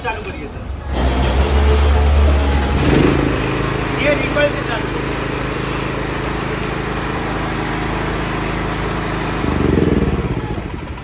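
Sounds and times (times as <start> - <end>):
generator engine cranking and running: 0.0 - 11.0.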